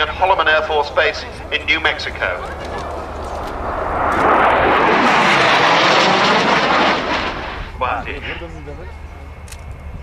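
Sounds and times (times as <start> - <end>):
loud jet rush: 1.8 - 8.8.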